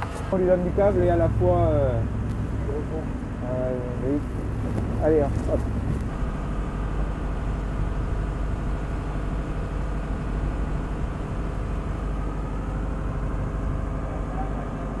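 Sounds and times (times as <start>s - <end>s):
constant hum: 0.0s - 15.0s
ship engine droning: 0.0s - 15.0s.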